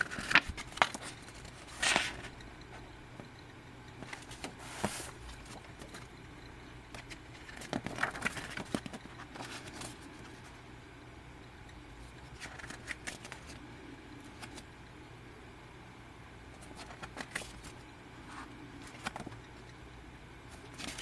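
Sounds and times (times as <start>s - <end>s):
paper pages rustling: 0.0s - 2.3s, 4.0s - 6.1s, 6.9s - 10.5s, 12.3s - 13.6s, 16.6s - 19.4s, 20.6s - 21.0s.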